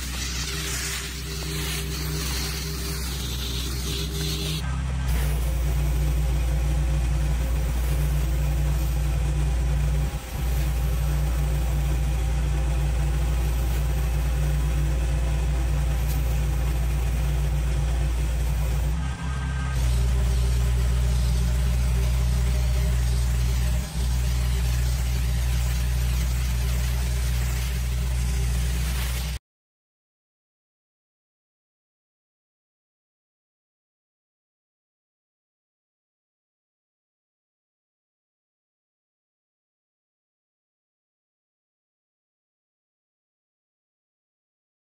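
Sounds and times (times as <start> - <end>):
water spraying on concrete: 0.0 - 6.7, 10.0 - 18.9, 19.8 - 29.4
pressure washer engine running: 0.0 - 29.4.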